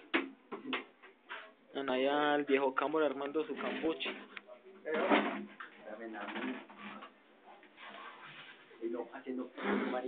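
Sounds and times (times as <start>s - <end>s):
muffled voices: 2.4s - 8.2s.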